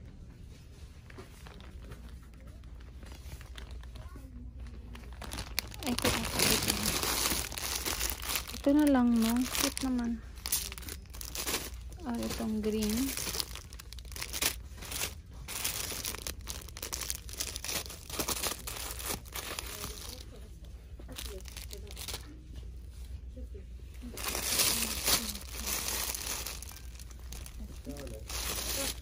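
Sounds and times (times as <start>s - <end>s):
plastic wrap crinkling: 1.0s - 23.0s, 24.0s - 29.0s.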